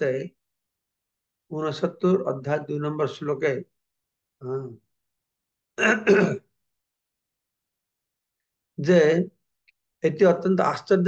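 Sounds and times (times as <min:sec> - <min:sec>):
man clearing throat: 0:05.8 - 0:06.5.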